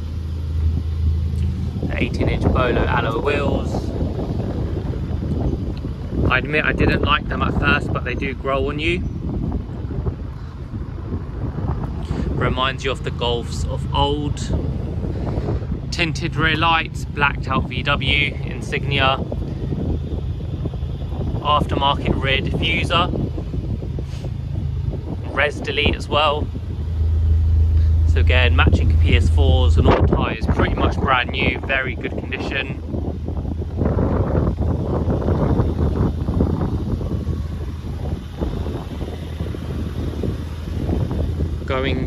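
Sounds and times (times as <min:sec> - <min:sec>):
low rumble: 0:00.0 - 0:42.0
steady low hum: 0:00.0 - 0:42.0
wind buffeting microphone: 0:00.0 - 0:42.0.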